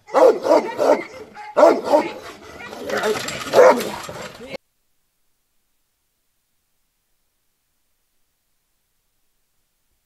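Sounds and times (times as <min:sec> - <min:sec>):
dogs barking: 0:00.0 - 0:04.3.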